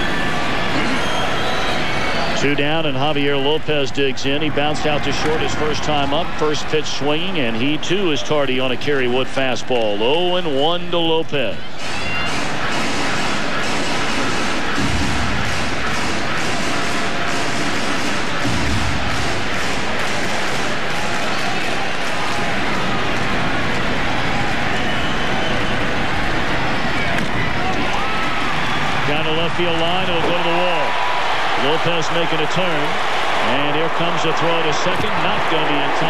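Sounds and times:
large crowd din: 0:00.0 - 0:36.0.

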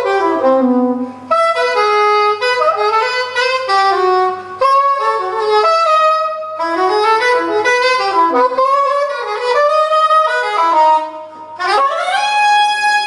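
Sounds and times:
soprano saxophone jazz line: 0:00.0 - 0:13.0.

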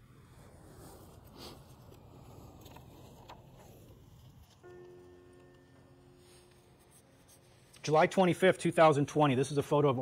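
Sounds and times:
faint steady tone: 0:00.0 - 0:09.6
man speaking: 0:07.8 - 0:10.0.

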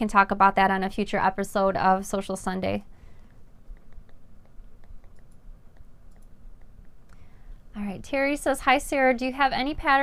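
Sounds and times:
low room hum: 0:00.0 - 0:10.0
faint light clicks and ticks: 0:03.2 - 0:07.3.

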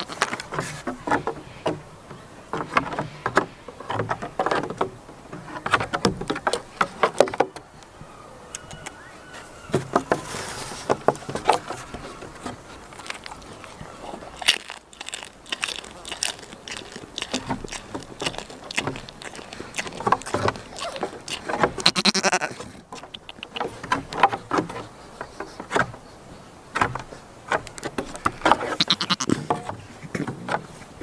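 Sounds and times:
goat bleating: 0:20.7 - 0:22.6, 0:28.8 - 0:29.4
sharp taps and clicks: 0:23.0 - 0:24.4.

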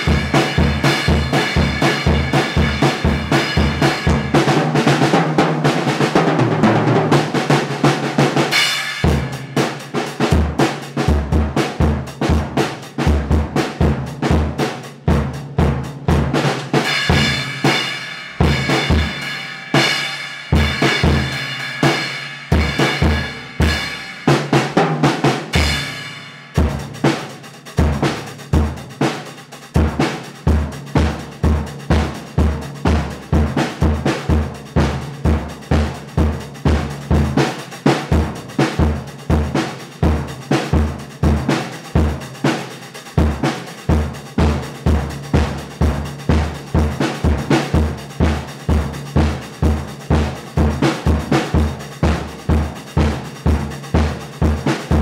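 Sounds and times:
bass drum and snare groove: 0:00.0 - 0:55.0
cymbals ringing: 0:16.9 - 0:24.4.

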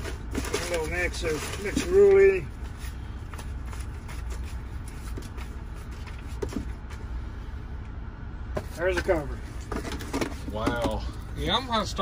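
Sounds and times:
paper banknotes rustling: 0:00.0 - 0:07.0.

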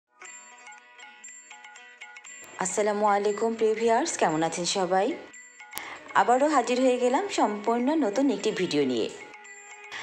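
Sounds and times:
chiming bell-like jingle: 0:00.2 - 0:04.4.

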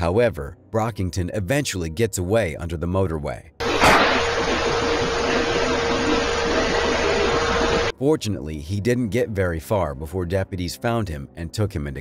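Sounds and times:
static-like noise: 0:03.6 - 0:07.9
steady hum: 0:03.6 - 0:07.9.

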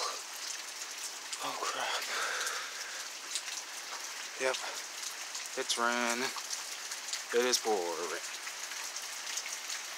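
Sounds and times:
heavy rain pouring: 0:00.0 - 0:09.9.

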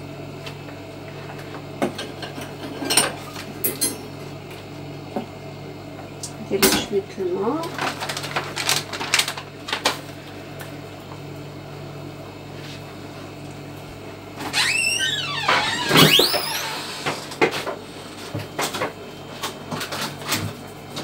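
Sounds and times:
plastic packets crinkling: 0:07.6 - 0:10.2
squeaking creak: 0:14.5 - 0:17.3.

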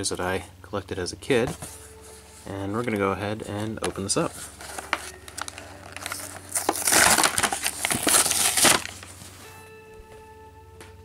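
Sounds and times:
plastic packaging tearing: 0:03.8 - 0:09.2.

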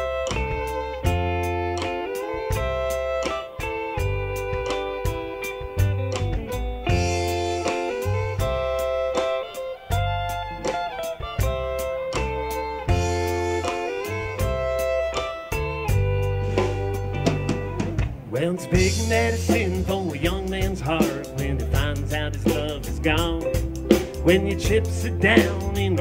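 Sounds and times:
bass guitar: 0:00.0 - 0:26.0
drum kit beat: 0:00.0 - 0:26.0
electric guitar: 0:00.0 - 0:26.0
fiddle: 0:00.0 - 0:26.0.

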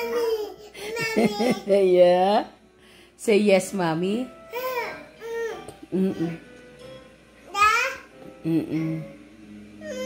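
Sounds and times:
woman humming: 0:05.7 - 0:06.5, 0:08.3 - 0:09.2.

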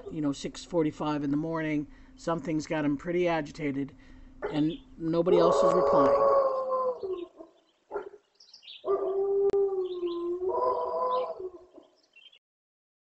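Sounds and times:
wolf howling: 0:05.3 - 0:08.2, 0:08.8 - 0:11.9.

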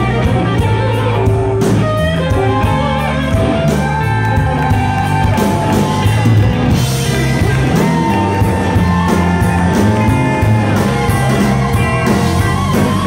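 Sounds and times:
blues-rock band playing: 0:00.0 - 0:13.0.

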